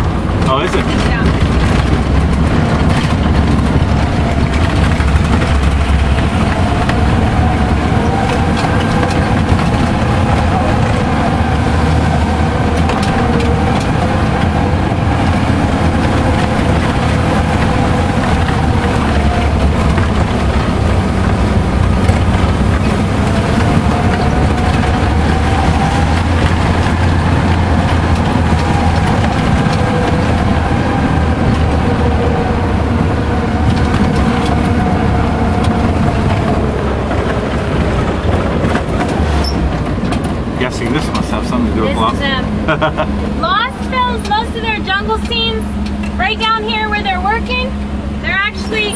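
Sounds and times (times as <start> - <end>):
vehicle engine droning: 0.0 - 48.9.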